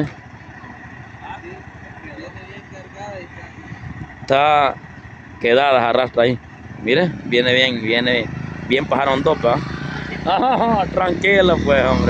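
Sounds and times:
distant voices talking: 0.0 - 12.0
vehicle engine idling: 0.0 - 12.0.

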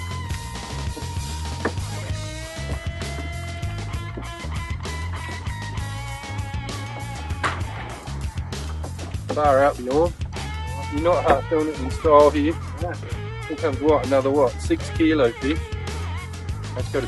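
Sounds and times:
background music with low beat: 0.0 - 17.0.

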